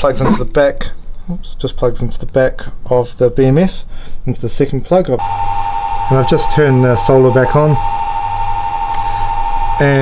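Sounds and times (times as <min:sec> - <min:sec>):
electrical hum: 0:04.8 - 0:10.0
high-pitched electronic whine: 0:05.2 - 0:10.0.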